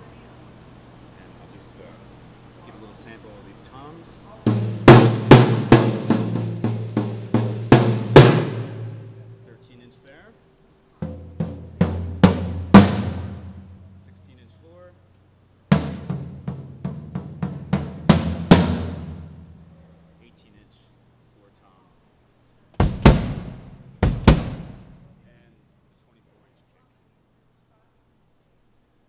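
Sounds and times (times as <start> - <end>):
drum toms being hit: 4.4 - 9.8, 11.0 - 14.4, 15.7 - 20.0, 22.8 - 25.4.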